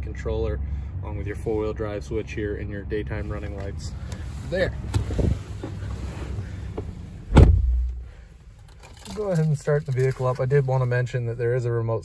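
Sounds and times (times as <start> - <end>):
low rumbling: 0.0 - 9.8
loud thump: 7.3 - 8.0.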